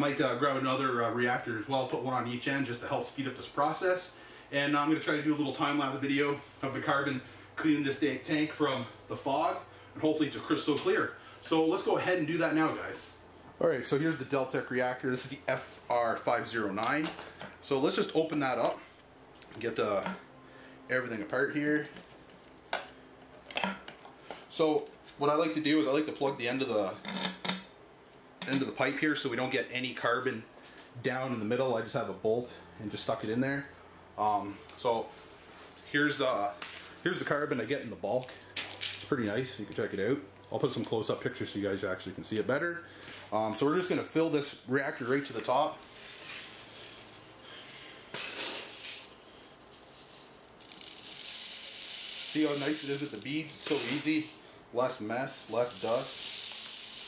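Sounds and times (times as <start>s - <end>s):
plastic bucket handling rustle: 49.7s - 54.4s.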